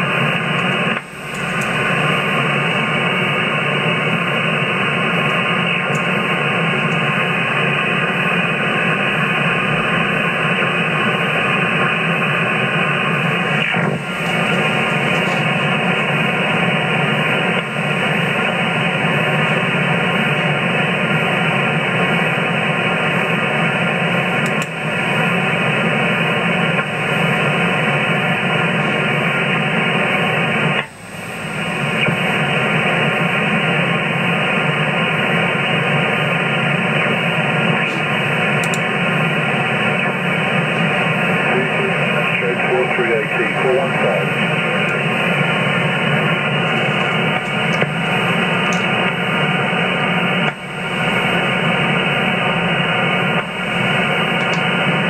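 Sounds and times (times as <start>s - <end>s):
radio static hiss: 0.0s - 55.0s.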